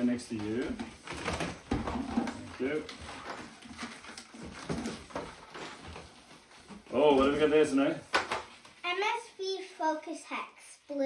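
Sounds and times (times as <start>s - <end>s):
packaging rustling: 0.3s - 8.8s.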